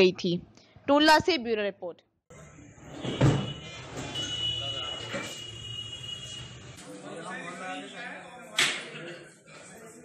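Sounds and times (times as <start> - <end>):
indistinct voices in a room: 3.5 - 10.0.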